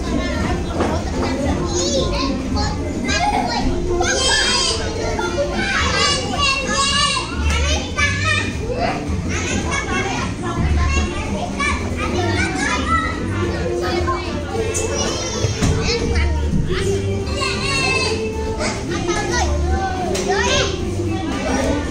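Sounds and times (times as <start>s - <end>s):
children chattering and shouting: 0.0s - 21.9s.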